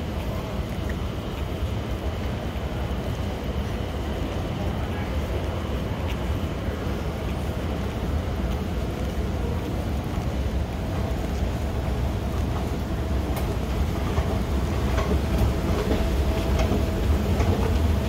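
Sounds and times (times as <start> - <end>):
low rumbling hall ambience: 0.0 - 18.0.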